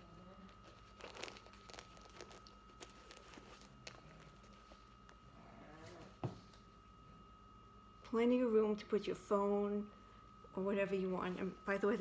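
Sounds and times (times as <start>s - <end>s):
leather wallet rustling: 0.8s - 4.0s.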